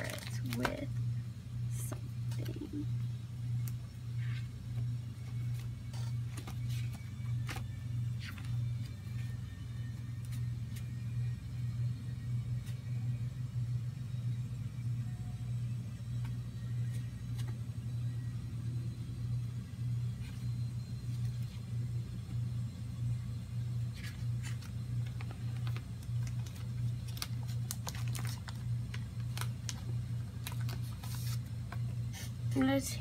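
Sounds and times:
low-pitched hum: 0.0s - 33.0s.

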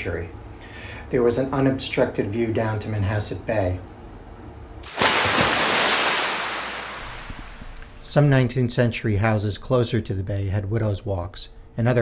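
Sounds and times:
wave crashing: 4.8s - 8.1s.

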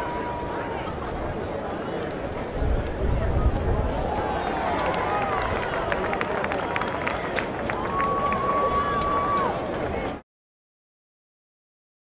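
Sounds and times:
crowd shouting and cheering: 0.0s - 2.1s, 3.0s - 10.2s
sharp claps: 4.7s - 9.5s.

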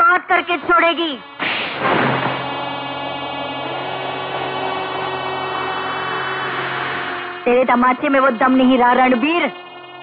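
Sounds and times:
loud booming hit: 1.3s - 5.4s
long ringing drone: 2.1s - 10.0s.

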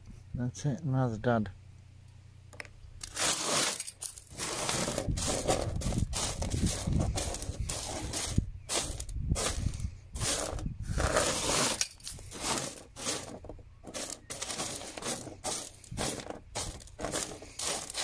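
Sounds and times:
wet gravel scraping on table: 3.0s - 18.0s.

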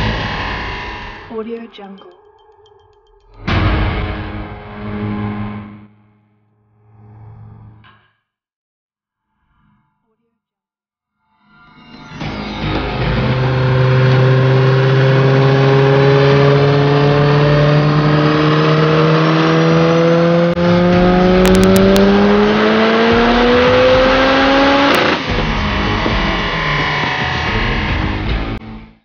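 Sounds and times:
engine winding down: 0.0s - 1.3s, 12.2s - 28.6s
car engine revving on dyno: 12.8s - 28.6s.

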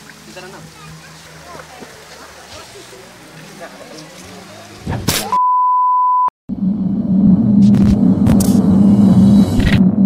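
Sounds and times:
steady beep: 5.4s - 6.3s
low droning hum: 6.5s - 10.0s.

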